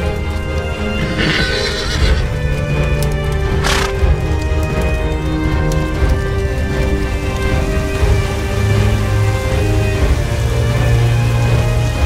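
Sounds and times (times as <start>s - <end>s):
hoofbeats: 0.0s - 7.2s
music of sustained tones: 0.0s - 12.0s
horse whinnying: 1.0s - 2.4s, 3.6s - 4.0s.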